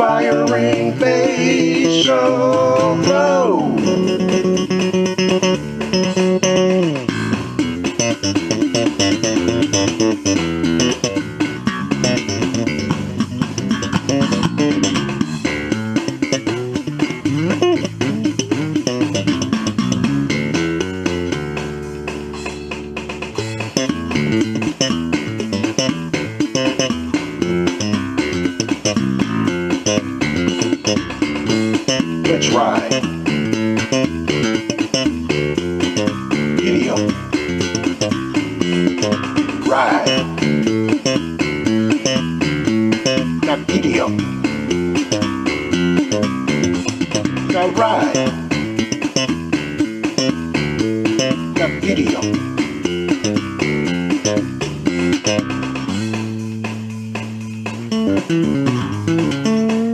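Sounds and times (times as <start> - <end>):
electric bass guitar line: 0.0 - 59.9.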